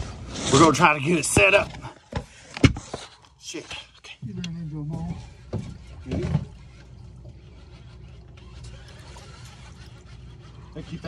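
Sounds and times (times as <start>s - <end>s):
low boat rumble: 4.2s - 11.0s.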